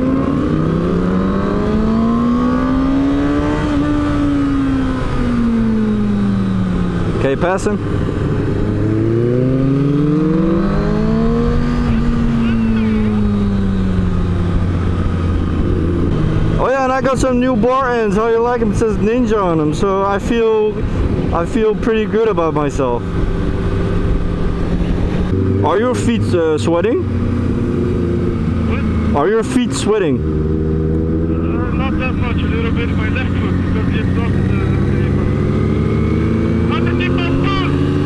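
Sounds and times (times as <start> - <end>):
motorcycle engine accelerating: 0.0 - 38.0
wind rushing over microphone: 0.0 - 38.0.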